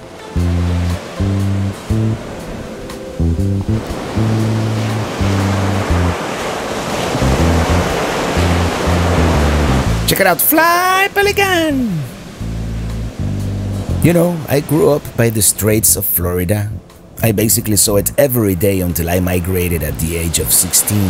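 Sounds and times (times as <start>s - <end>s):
surf washing onto a beach: 0.0s - 13.0s, 14.0s - 16.0s, 17.0s - 21.0s
music with repeating bass line: 0.4s - 2.3s, 3.2s - 6.2s, 7.2s - 10.1s, 12.4s - 14.1s.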